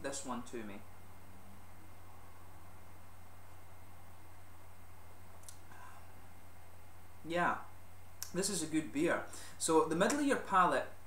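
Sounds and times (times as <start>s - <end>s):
low hum: 0.0s - 9.7s
faint click: 5.4s - 5.6s.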